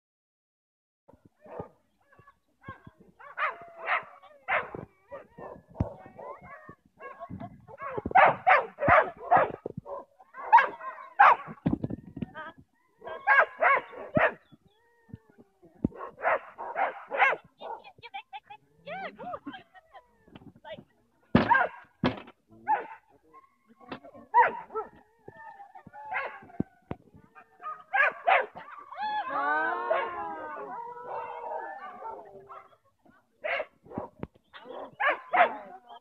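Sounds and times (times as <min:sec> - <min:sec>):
dog barking in bursts: 0:02.7 - 0:11.6, 0:13.0 - 0:14.4, 0:16.0 - 0:17.8, 0:21.4 - 0:21.9, 0:22.7 - 0:23.1, 0:24.3 - 0:24.9, 0:26.1 - 0:26.4, 0:27.6 - 0:28.6, 0:33.4 - 0:35.7.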